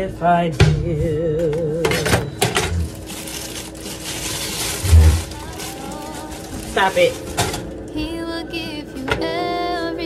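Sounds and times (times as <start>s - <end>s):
plastic crinkling: 2.5s - 7.9s.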